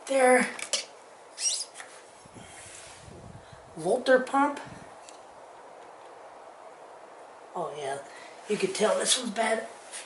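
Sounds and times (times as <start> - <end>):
short rising squeak: 1.4 - 1.8.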